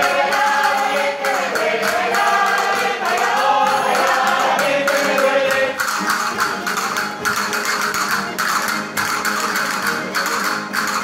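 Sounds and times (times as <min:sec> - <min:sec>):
folk string band strumming: 0:00.0 - 0:11.0.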